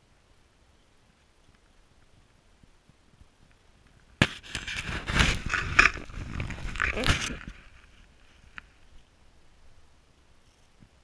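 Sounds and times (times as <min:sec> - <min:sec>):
scraping rubs against microphone: 0:04.2 - 0:09.0.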